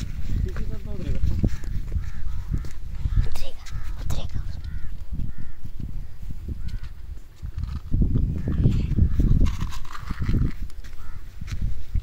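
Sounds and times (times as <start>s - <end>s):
footsteps on dry grass and dirt: 0.0s - 12.0s
phone microphone handling rumble: 4.6s - 12.0s.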